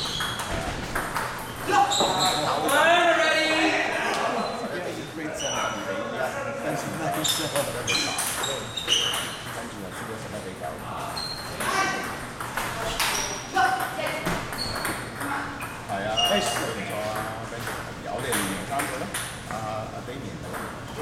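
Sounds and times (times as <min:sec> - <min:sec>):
people talking: 0:01.7 - 0:08.8, 0:09.5 - 0:21.0.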